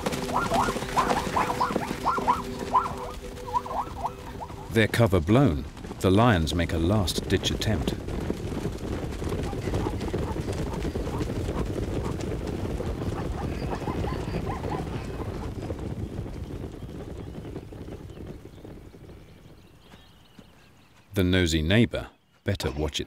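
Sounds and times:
hooves of herd galloping: 0.0s - 21.2s.

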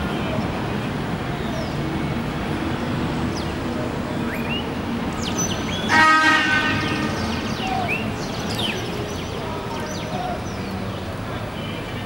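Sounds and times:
traffic din: 0.0s - 12.0s
vehicle horn: 5.9s - 7.4s.

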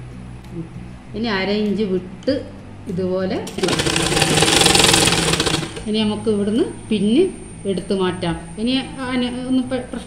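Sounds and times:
sewing machine stitching: 3.5s - 5.9s.

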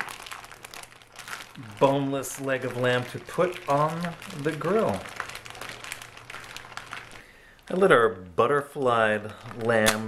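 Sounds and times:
plastic bag crinkling: 0.0s - 10.0s.

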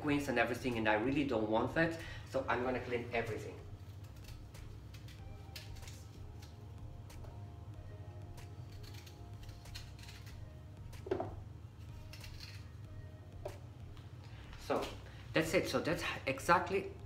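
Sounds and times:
faint background music: 0.0s - 17.0s
low steady hum: 0.0s - 17.0s
small knife cutting fruit: 8.4s - 11.1s, 11.8s - 12.8s
knock: 11.0s - 11.4s.

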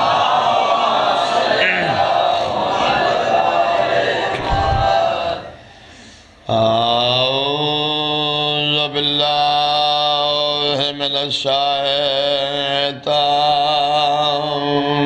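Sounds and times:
man chanting through a microphone: 6.4s - 15.0s.

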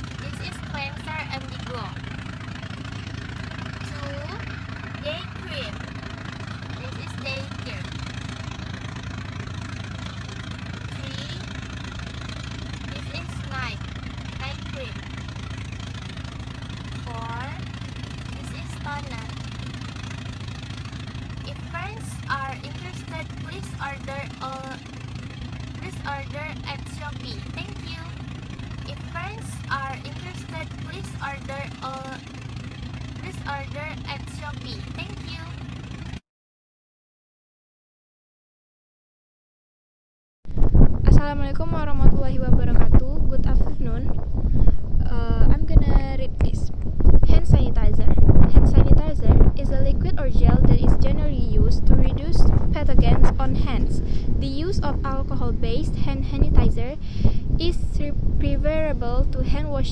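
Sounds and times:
engine idling drone: 0.0s - 36.2s, 40.5s - 59.9s
low background rumble: 0.0s - 36.2s, 40.5s - 59.9s
woman speaking: 0.2s - 2.0s, 3.8s - 4.4s, 5.0s - 5.8s, 6.6s - 7.9s, 10.9s - 11.5s, 12.9s - 15.0s, 16.9s - 19.4s, 21.4s - 24.8s, 25.8s - 28.2s, 28.9s - 32.3s, 33.2s - 35.6s, 41.1s - 44.1s, 45.0s - 59.9s.

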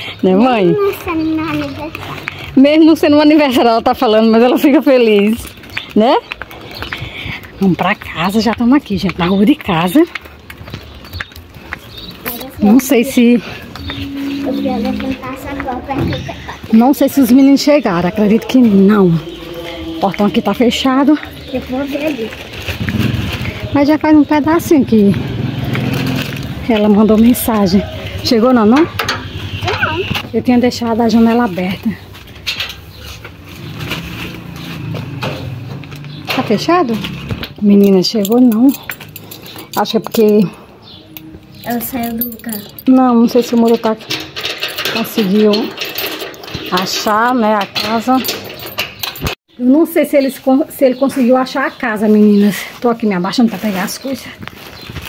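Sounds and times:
footsteps on cobblestones: 0.0s - 38.2s
low steady drone: 13.6s - 15.7s
metal door latch clicking and rattling: 43.5s - 49.4s.

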